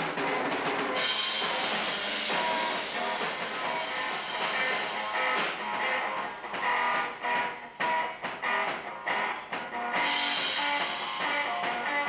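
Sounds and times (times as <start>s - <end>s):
strummed guitar chords: 0.0s - 12.0s.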